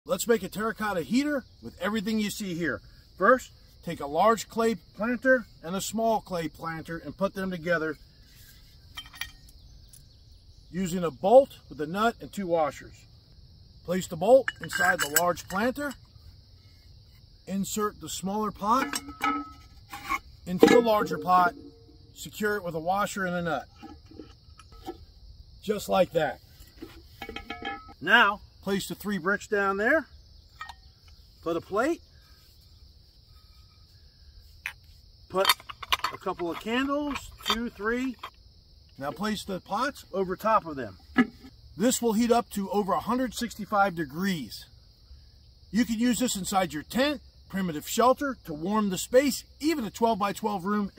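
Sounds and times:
insects hissing: 0.1 - 50.9
metal hardware clicks: 14.4 - 16.0, 18.7 - 22.3, 34.7 - 38.4.

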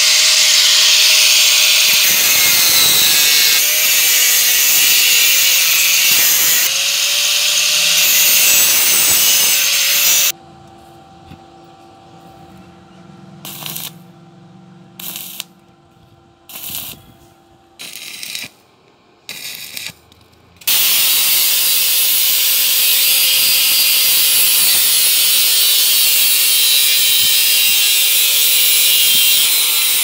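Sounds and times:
welding arc crackle: 0.0 - 10.3, 13.4 - 14.1, 15.0 - 15.5, 16.5 - 17.1, 17.8 - 18.6, 19.3 - 30.0
angle grinder cutting metal: 0.0 - 10.4, 13.4 - 14.1, 15.0 - 15.5, 16.5 - 17.0, 17.8 - 18.5, 19.3 - 20.0, 20.6 - 30.0.

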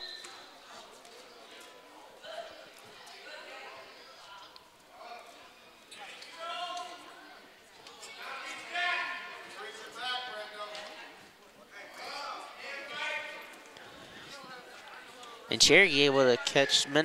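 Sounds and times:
voices shouting and calling out: 2.2 - 17.0.

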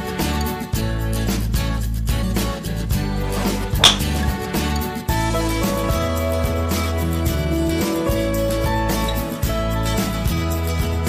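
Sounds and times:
guitar music: 2.2 - 11.0
golf club striking ball: 3.4 - 4.5.

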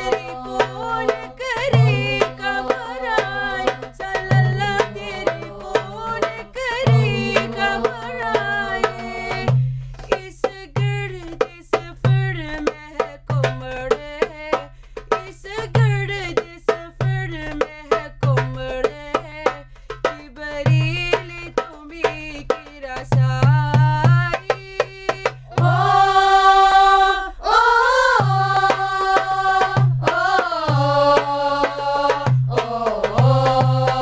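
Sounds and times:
girls singing in unison: 0.0 - 9.5, 25.5 - 34.0
drum strikes and low thuds: 0.0 - 26.2, 28.1 - 34.0.

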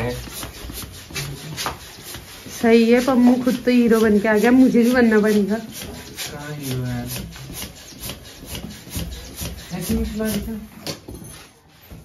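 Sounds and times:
balloon pump air strokes: 0.0 - 10.4.

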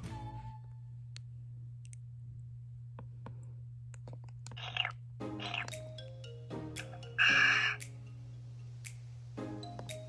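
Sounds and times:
steady low hum: 0.6 - 9.8.

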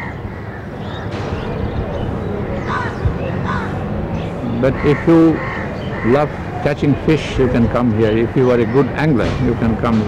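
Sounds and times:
high bird call: 0.0 - 6.8
low outdoor rumble: 0.0 - 10.0.

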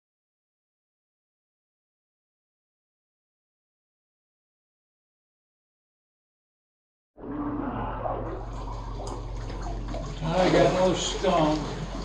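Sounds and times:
steady low hum: 7.2 - 12.0
water sloshing from wading: 7.2 - 12.0.

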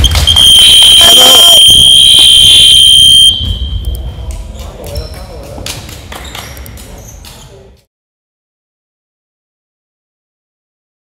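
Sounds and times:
electronic game buzzer tone: 0.0 - 3.4.

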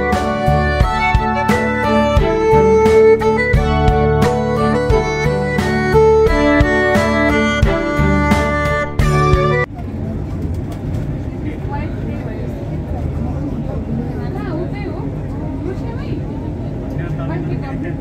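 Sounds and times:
bowed string music: 0.0 - 9.7
people talking: 9.6 - 18.0.

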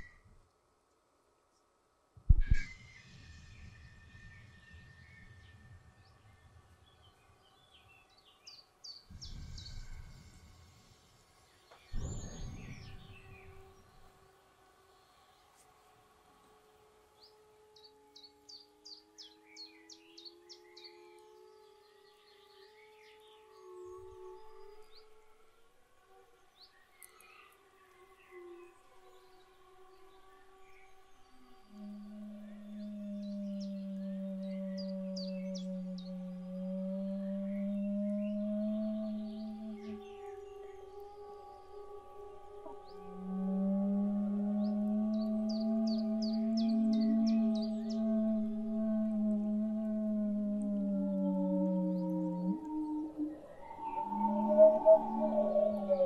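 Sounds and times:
loud low held tone: 42.6 - 56.0.

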